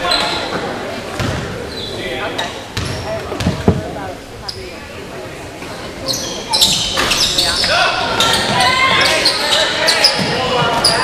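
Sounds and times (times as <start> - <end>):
sneakers squeaking on court: 0.0 - 4.8, 6.0 - 11.0
people shouting: 7.7 - 11.0.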